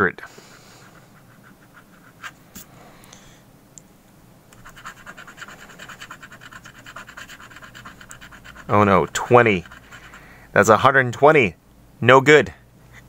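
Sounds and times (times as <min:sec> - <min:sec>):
coin scratching lottery ticket: 0:00.7 - 0:02.4, 0:04.6 - 0:10.2.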